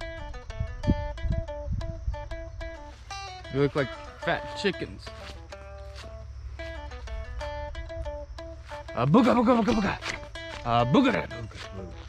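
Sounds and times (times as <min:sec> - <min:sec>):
acoustic guitar plucking: 0:00.0 - 0:12.0.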